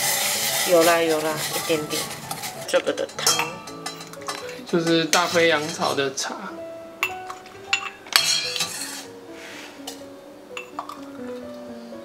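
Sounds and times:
soft background music: 0:00.0 - 0:12.0
metal ladle clinking on pot: 0:01.4 - 0:05.9, 0:07.0 - 0:09.1, 0:10.6 - 0:11.1.

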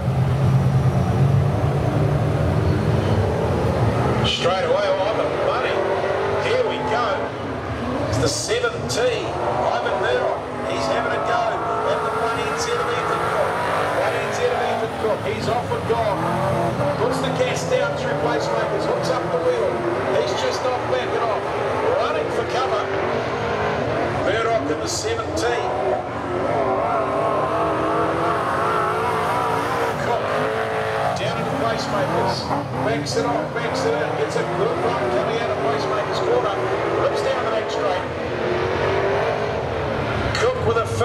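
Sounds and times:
race car engines revving: 0:00.0 - 0:41.0.

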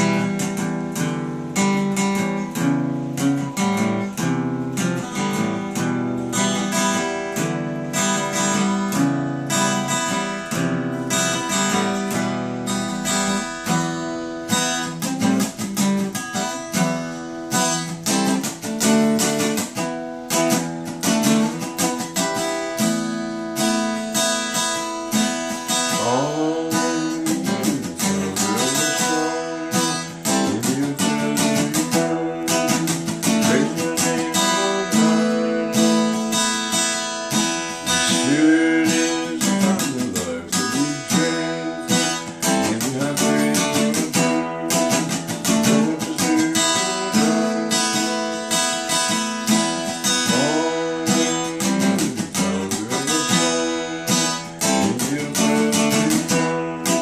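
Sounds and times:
acoustic guitar picking: 0:00.0 - 0:57.0.

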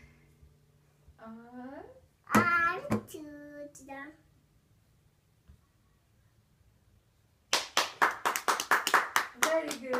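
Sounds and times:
child clapping hands: 0:07.5 - 0:09.9.

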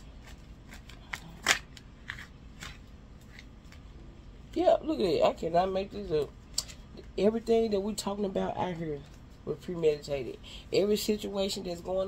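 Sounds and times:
cards being shuffled: 0:00.1 - 0:04.7.

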